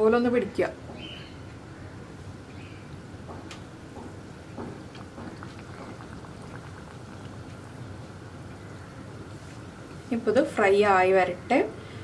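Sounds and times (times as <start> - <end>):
oil crackling and popping: 3.5 - 10.0
dough sizzling in hot oil: 4.6 - 10.7.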